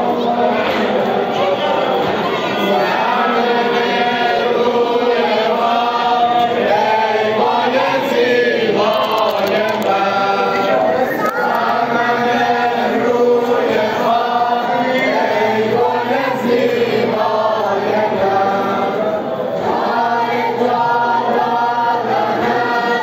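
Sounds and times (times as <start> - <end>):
men chanting in unison: 0.0 - 23.0.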